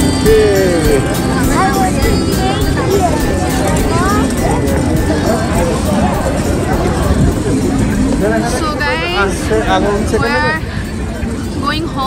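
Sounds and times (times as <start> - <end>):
background music: 0.0 - 12.0
crowd talking: 0.0 - 12.0.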